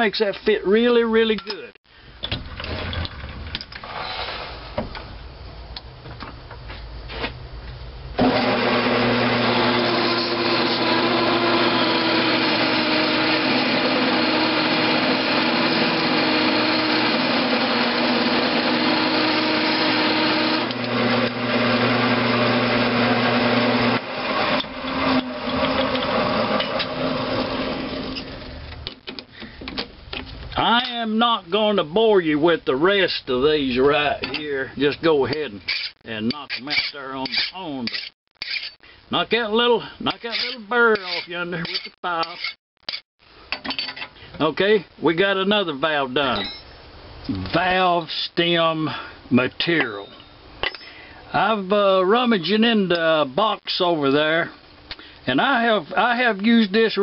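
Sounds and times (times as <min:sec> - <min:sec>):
metal lathe running: 0:08.2 - 0:28.2
drill bit cutting into iron: 0:08.2 - 0:28.3, 0:35.7 - 0:38.8, 0:40.2 - 0:43.0.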